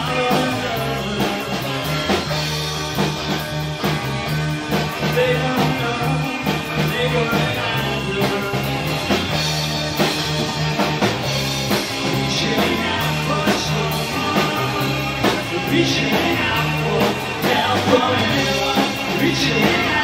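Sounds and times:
bass line: 0.0 - 20.0
rock band playing live: 0.0 - 20.0
steady drum beat: 0.0 - 20.0.

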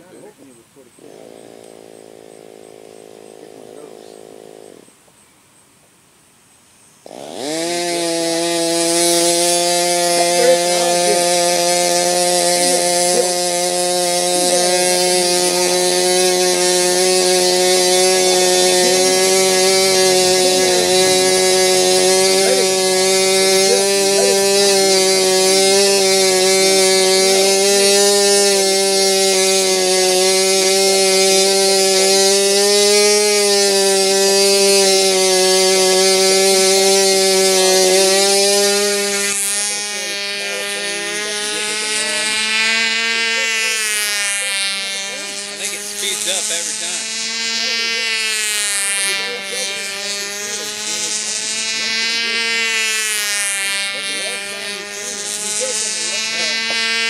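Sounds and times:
model airplane engine running: 0.0 - 5.0, 6.7 - 57.0.

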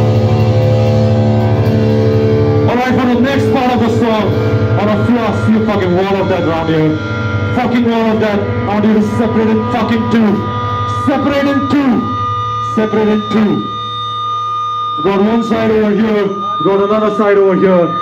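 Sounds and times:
amplifier hum: 0.0 - 18.0
ringing guitar tone: 0.0 - 18.0.

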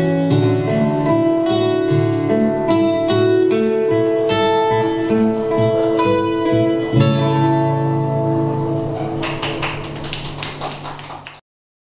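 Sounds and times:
audience clapping: 8.8 - 11.4.

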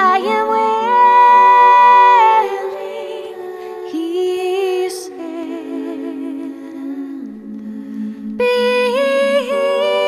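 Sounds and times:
hummed chord notes: 0.0 - 10.0
woman singing with vocal harmonies: 0.0 - 10.0.

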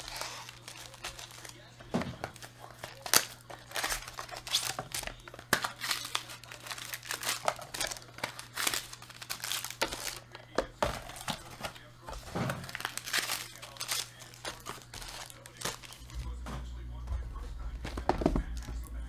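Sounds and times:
foil wrappers crinkling and tearing: 0.0 - 16.3.

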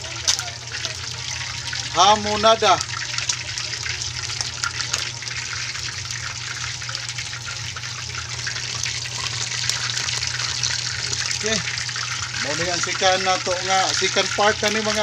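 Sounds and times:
meat sizzling in hot oil: 0.0 - 15.0
small crackles of frying: 0.0 - 15.0.

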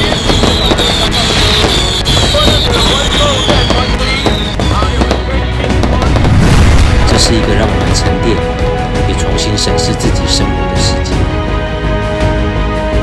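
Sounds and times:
high whistle falling in pitch: 0.0 - 5.3
fireworks crackling and popping: 0.0 - 8.4
background music: 0.0 - 13.0.

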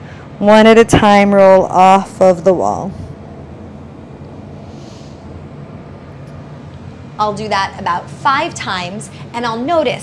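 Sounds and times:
low room hum: 0.0 - 10.0
soft drawn-out exhale: 4.6 - 5.4.

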